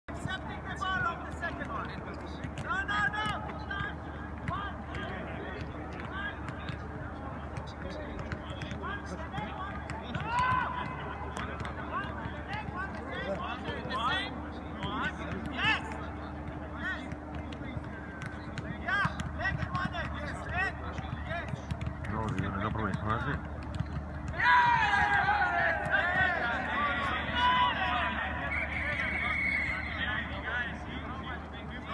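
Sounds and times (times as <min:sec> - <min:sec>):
balls being kicked and headed: 0:00.1 - 0:14.0, 0:14.8 - 0:27.3
players shouting: 0:08.6 - 0:17.8, 0:24.2 - 0:31.9.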